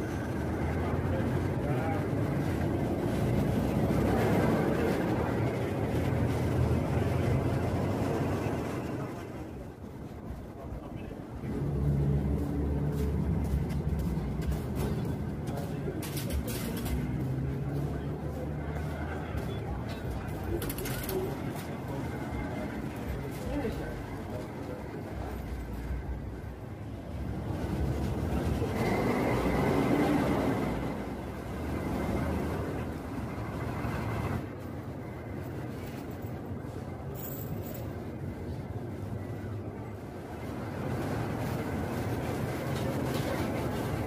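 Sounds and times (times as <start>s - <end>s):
diesel bus engine running: 0.0s - 37.1s.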